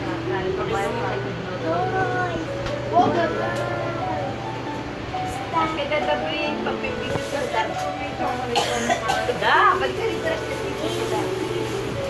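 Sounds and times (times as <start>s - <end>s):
indistinct talk of people: 0.0s - 12.0s.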